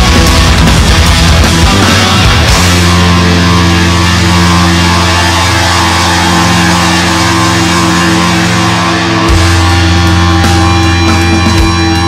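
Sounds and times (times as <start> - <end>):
distorted electric guitars: 0.0 - 12.0
heavy metal band playing: 0.0 - 12.0.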